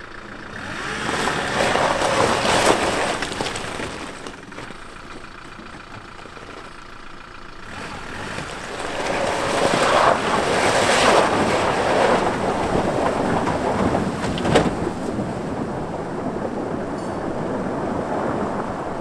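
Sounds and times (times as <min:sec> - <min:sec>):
truck engine running: 0:00.0 - 0:19.0
water splashing around wheels: 0:00.5 - 0:19.0.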